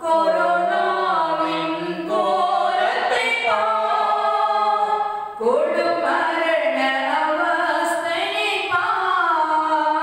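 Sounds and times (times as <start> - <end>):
woman singing a hymn: 0.0 - 10.0.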